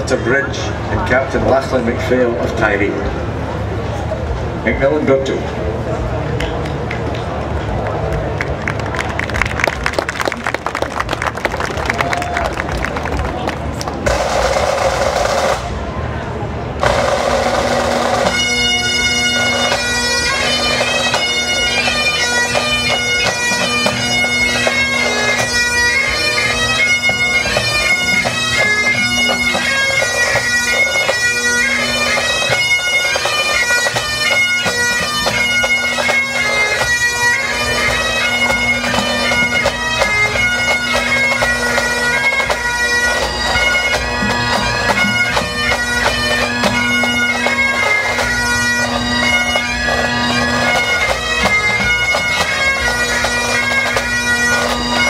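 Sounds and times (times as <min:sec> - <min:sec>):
bagpipes playing march melody: 0:00.0 - 0:06.1, 0:13.6 - 0:55.0
drum rolls: 0:08.6 - 0:16.0, 0:16.7 - 0:18.7.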